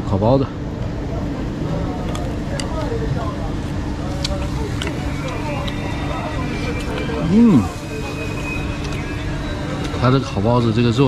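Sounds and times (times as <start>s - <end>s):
steady low hum: 0.0s - 11.0s
faint voices: 0.2s - 11.0s.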